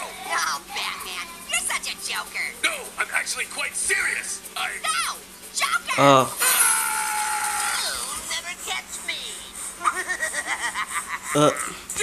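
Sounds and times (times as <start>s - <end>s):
high-pitched cartoon voice: 4.8s - 6.8s.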